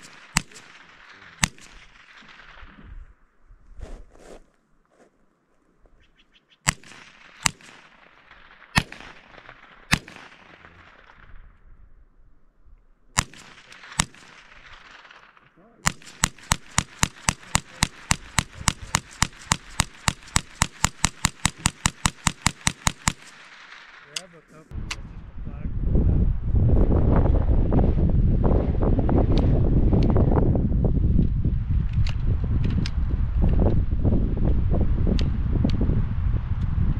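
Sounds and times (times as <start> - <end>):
rifle shots: 0.0 - 2.8, 6.7 - 11.5, 13.2 - 24.5.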